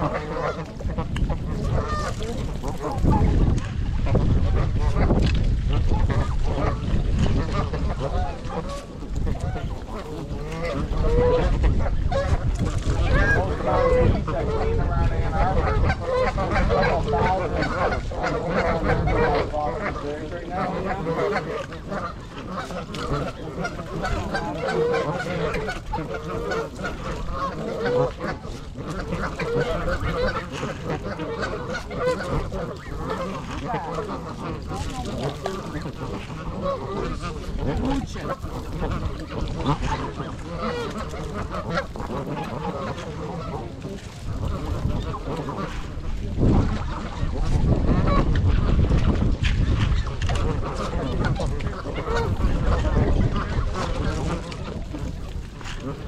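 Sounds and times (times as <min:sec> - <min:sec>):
geese honking: 0:00.0 - 0:56.0.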